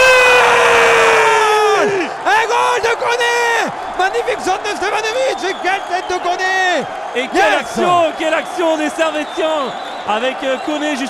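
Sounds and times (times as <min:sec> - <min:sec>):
man yelling excitedly: 0:00.0 - 0:08.2.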